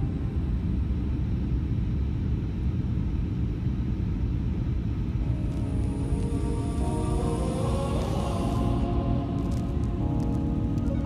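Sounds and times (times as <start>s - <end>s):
airliner cabin engine rumble: 0.0s - 11.0s
music: 5.2s - 11.0s.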